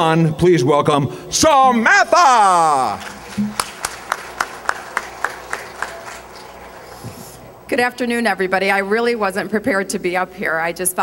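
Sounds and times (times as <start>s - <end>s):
low room hum: 0.4s - 11.0s
handclaps: 2.7s - 7.0s.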